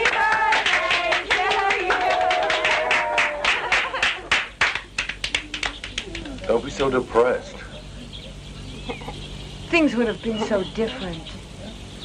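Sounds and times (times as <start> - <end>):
group clapping: 0.0 - 7.0
voices: 0.0 - 12.0.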